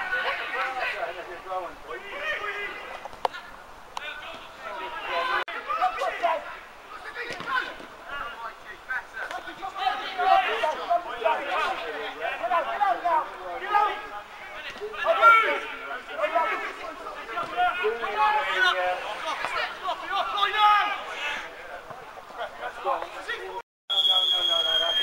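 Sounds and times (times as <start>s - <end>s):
people shouting: 9.4s - 21.6s.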